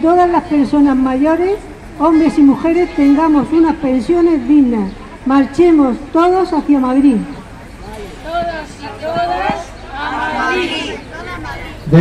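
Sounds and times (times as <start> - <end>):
several people talking at once: 1.8 - 12.0.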